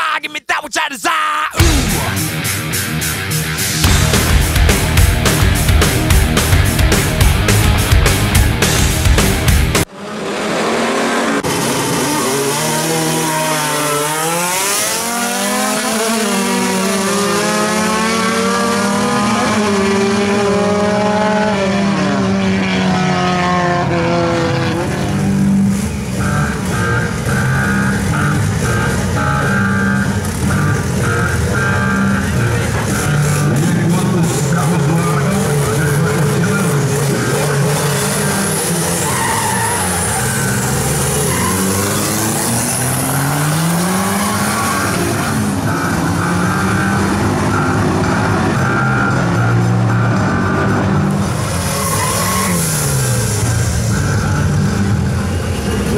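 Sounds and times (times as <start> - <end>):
race car engines at full throttle: 1.6 - 55.9.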